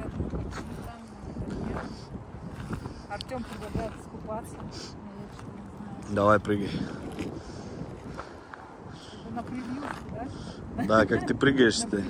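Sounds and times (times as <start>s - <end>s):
low outdoor background noise: 0.8s - 12.0s.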